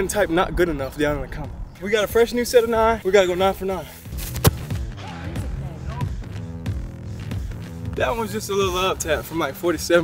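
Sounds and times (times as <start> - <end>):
background music: 0.0 - 10.0
foot kicking a football: 4.1 - 4.9.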